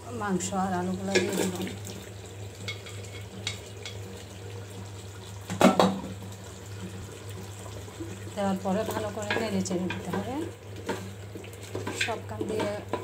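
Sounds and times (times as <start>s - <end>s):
food sizzling in pot: 0.0s - 13.0s
clatter against pot: 1.1s - 1.8s, 2.6s - 4.0s, 5.5s - 6.2s, 8.8s - 13.0s.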